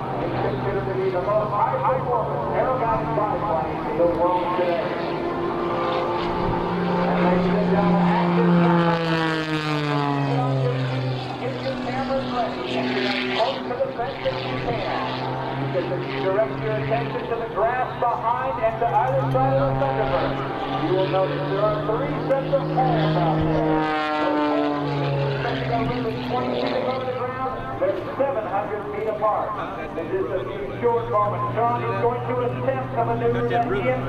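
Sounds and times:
crowd voices: 0.0s - 34.0s
propeller plane engine passing: 0.0s - 34.0s.

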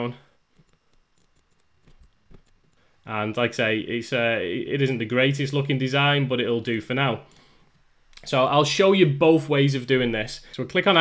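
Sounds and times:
keyboard and mouse clicks: 0.5s - 2.8s.

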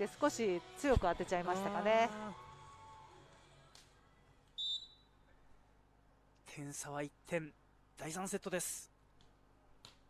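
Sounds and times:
referee's whistle blast: 4.6s - 5.1s.

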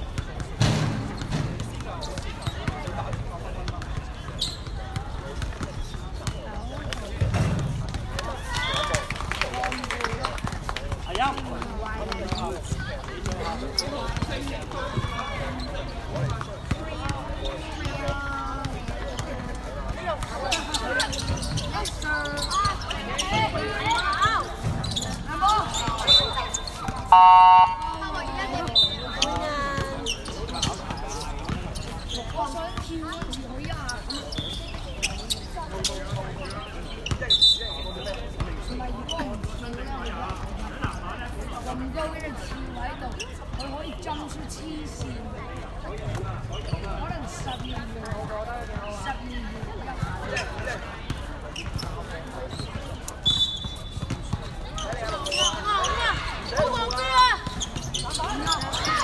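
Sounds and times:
voices calling out and chattering: 0.0s - 59.0s
basketball bouncing: 54.0s - 55.6s.

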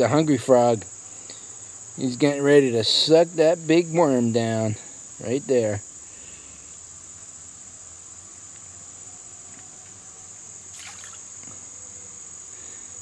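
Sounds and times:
insects chorus: 0.0s - 13.0s.

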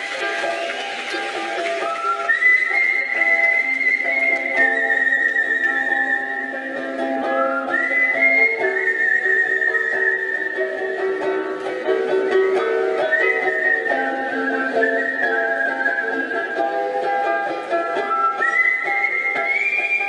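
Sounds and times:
picked ukulele notes: 0.0s - 20.0s
person whistling a melody: 1.8s - 11.4s, 13.0s - 17.1s, 17.7s - 20.0s.

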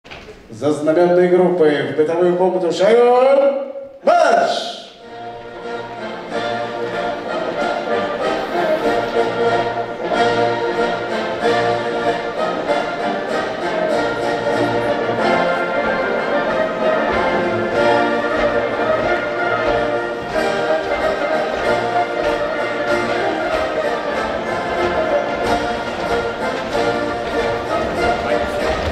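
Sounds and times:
brass band playing military march: 4.8s - 28.9s.

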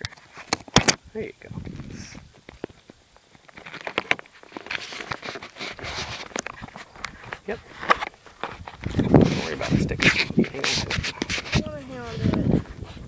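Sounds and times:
microphone handling noise: 0.0s - 13.0s.

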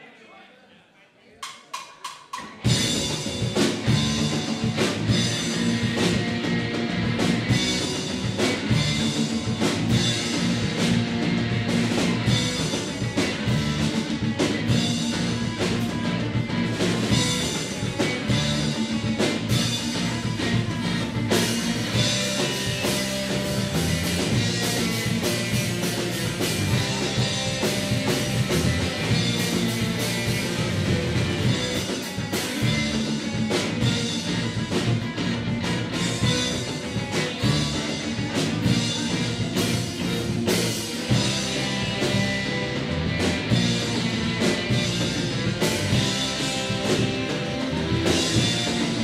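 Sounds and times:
live rock band playing: 1.7s - 49.0s.

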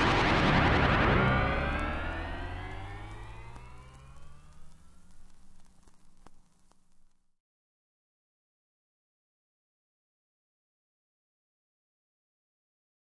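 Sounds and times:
electronic upward sweep: 0.0s - 5.8s
faint clicks: 3.0s - 7.2s.

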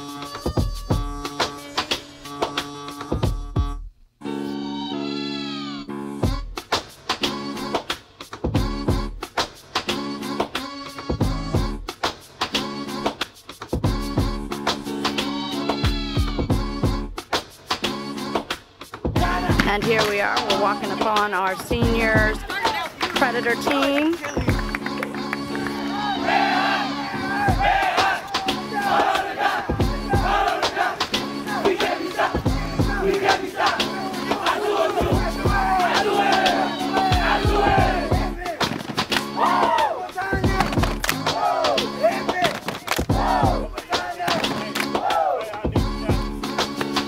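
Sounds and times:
background music: 0.0s - 47.0s
team shouting and chanting: 19.2s - 21.3s, 25.4s - 46.3s.

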